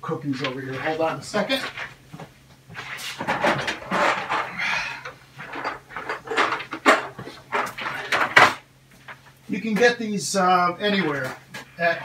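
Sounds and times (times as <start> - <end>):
plastic pipe fittings rattling in tub: 3.2 - 9.2.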